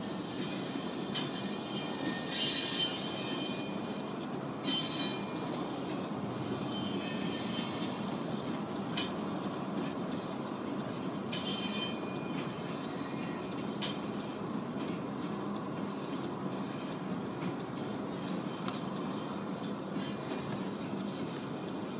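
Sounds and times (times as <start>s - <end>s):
freight train wheels rumbling on rail: 0.0s - 21.9s
high-pitched wheel squeals: 0.2s - 3.9s, 4.7s - 5.5s, 6.7s - 8.0s, 11.4s - 13.8s.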